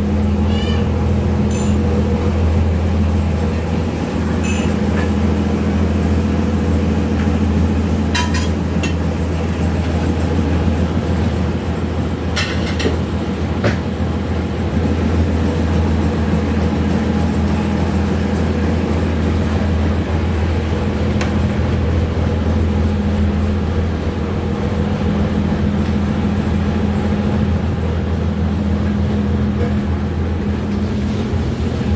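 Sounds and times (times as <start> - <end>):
boat engine droning: 0.0 - 31.9.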